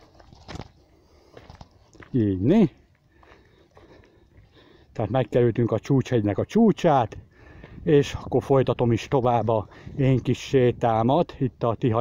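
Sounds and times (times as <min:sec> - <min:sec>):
footsteps on dry trail: 0:00.0 - 0:10.4
light breathing: 0:00.8 - 0:02.0, 0:02.8 - 0:05.0, 0:07.2 - 0:07.9, 0:09.6 - 0:10.0.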